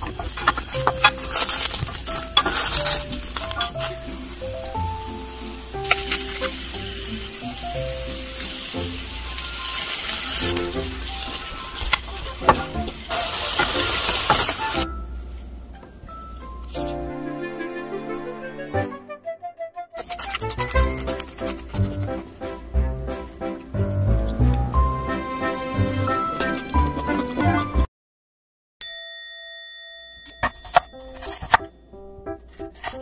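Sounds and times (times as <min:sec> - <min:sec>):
eggplant sizzling in pan: 0:00.4 - 0:14.9.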